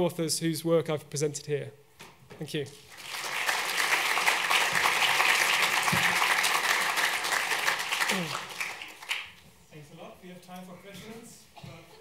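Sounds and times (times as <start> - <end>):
audience applauding: 2.8 - 9.4.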